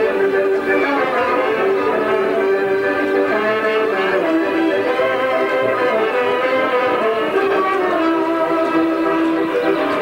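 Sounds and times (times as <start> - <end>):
folk band playing: 0.0 - 10.0.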